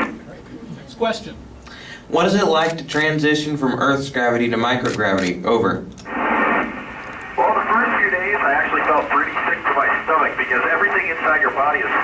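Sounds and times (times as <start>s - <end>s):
radio static hiss: 0.0s - 0.6s, 6.0s - 12.0s
man talking over radio: 7.3s - 12.0s.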